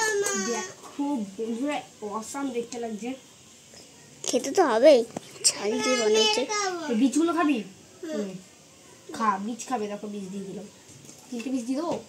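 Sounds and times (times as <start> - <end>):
toddler crying: 0.0 - 0.8.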